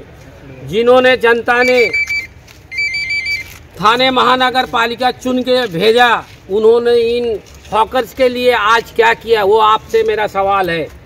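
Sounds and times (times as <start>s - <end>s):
short high electronic beeps: 1.6s - 3.6s.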